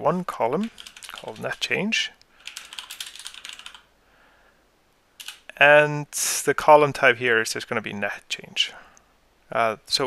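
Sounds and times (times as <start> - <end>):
computer keyboard typing: 0.7 - 1.8, 2.4 - 3.9, 5.2 - 5.5.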